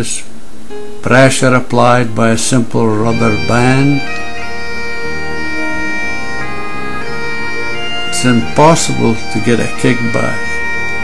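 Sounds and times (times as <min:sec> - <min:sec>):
bagpipe music: 0:03.0 - 0:11.0.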